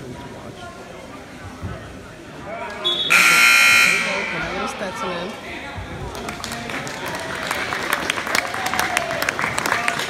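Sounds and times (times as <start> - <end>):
crowd chatter: 0.0 - 10.0
scoreboard horn buzz: 2.9 - 4.7.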